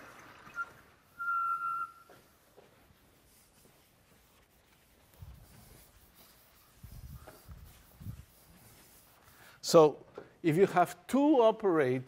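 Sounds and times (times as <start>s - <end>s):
chalk squeaking on blackboard: 1.9s - 9.4s.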